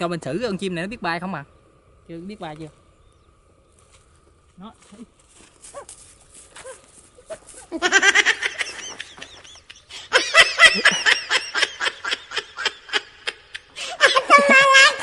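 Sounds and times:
man laughing: 7.7 - 15.0.

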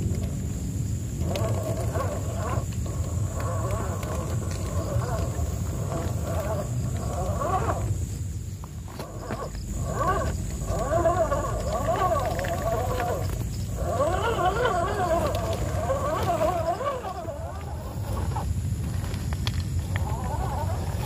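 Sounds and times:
electric motor whining: 0.0 - 21.0
low rumble: 0.0 - 21.0.

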